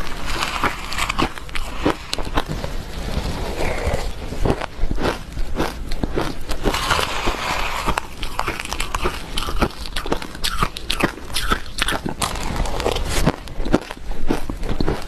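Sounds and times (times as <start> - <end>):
crunching and chewing ice: 0.0 - 15.0
metal spoon scraping plastic bowl: 6.7 - 9.6.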